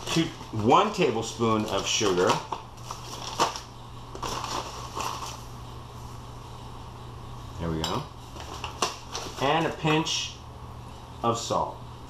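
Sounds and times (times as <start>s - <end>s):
grainy sugar rustle: 0.0s - 5.5s.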